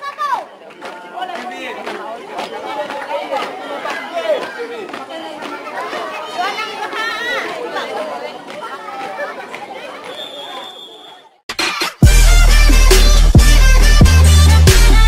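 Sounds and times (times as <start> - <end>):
crowd talking and calling out: 0.0 - 15.0.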